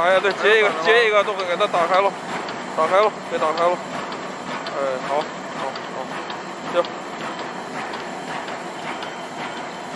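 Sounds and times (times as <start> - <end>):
machine clattering knocks: 0.0 - 9.9.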